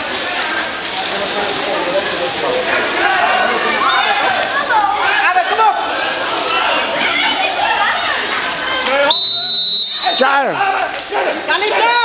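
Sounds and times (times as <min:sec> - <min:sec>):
voices calling: 0:00.0 - 0:12.0
water splashing in a pool: 0:00.0 - 0:12.0.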